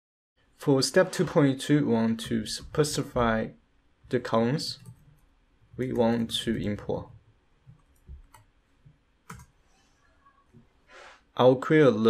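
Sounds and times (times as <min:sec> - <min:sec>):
keyboard keystrokes: 0:07.7 - 0:08.5, 0:09.3 - 0:09.5.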